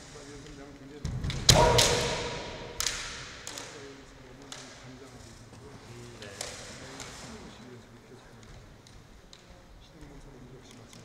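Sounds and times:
loud sword strike: 0:01.5 - 0:03.4
bamboo swords clacking: 0:01.5 - 0:03.8.

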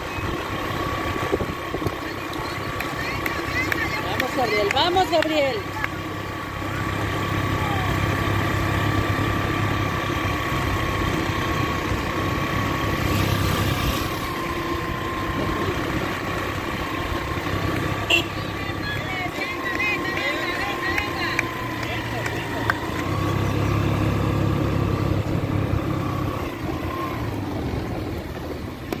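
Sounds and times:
faint voices: 0:00.0 - 0:12.2
vehicle engine running: 0:00.0 - 0:29.0.

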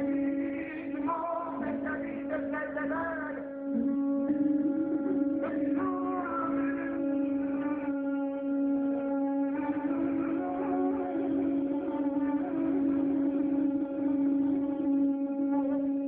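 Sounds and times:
man singing into microphone: 0:00.0 - 0:15.8
guitar accompaniment: 0:00.0 - 0:16.0.

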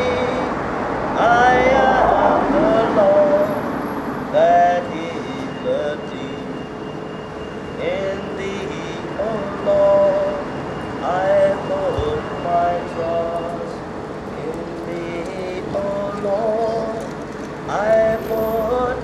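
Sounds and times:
man singing: 0:00.0 - 0:03.7, 0:04.3 - 0:06.7, 0:07.8 - 0:19.0
road traffic noise: 0:00.0 - 0:19.0.

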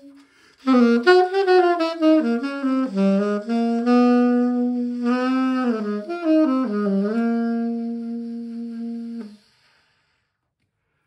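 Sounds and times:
saxophone long low note: 0:00.0 - 0:09.5.

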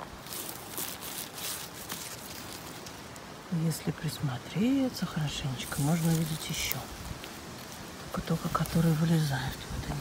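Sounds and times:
rustling grass and leaf litter: 0:00.0 - 0:10.0.

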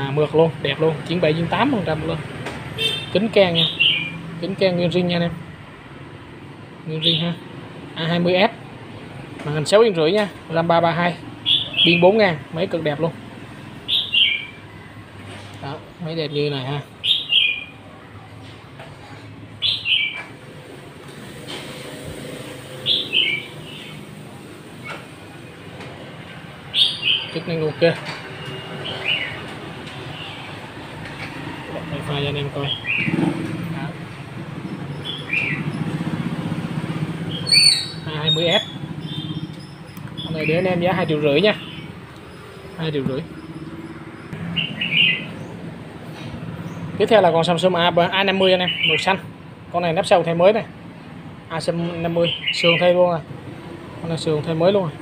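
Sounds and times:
bird calling: 0:02.8 - 0:04.3, 0:11.4 - 0:12.4, 0:13.8 - 0:17.9, 0:19.6 - 0:20.5, 0:22.7 - 0:25.1, 0:26.6 - 0:30.7, 0:31.7 - 0:33.5, 0:34.6 - 0:36.0, 0:37.2 - 0:47.0, 0:48.2 - 0:49.2, 0:52.1 - 0:53.1.

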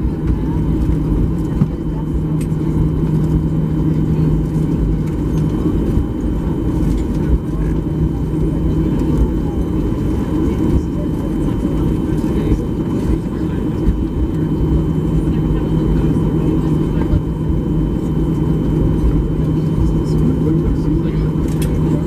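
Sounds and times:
aircraft engines rumbling: 0:00.0 - 0:22.0
steady low hum: 0:00.0 - 0:22.0.

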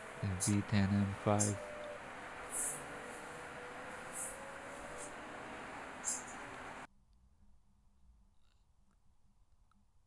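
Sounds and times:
passing cars: 0:00.0 - 0:06.9
short hissing sounds: 0:02.4 - 0:05.2, 0:06.0 - 0:06.5.

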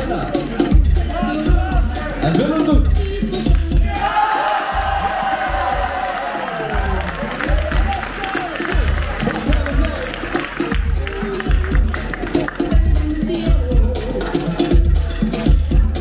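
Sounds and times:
battle music with pulsing bass: 0:00.0 - 0:06.1, 0:06.7 - 0:16.0
crowd cheering: 0:03.9 - 0:11.7.

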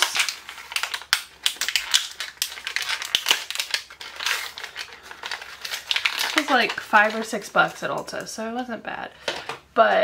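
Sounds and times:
packaging crinkling: 0:00.0 - 0:08.0.

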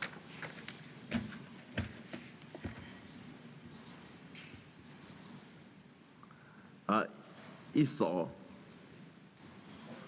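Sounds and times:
marker scratching on card: 0:02.6 - 0:04.2, 0:04.8 - 0:05.5, 0:08.5 - 0:10.0.

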